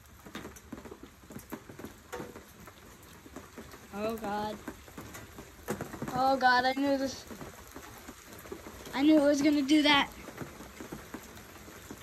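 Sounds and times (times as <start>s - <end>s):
rain hiss: 0.0s - 12.0s
raindrop ticks: 0.0s - 12.0s.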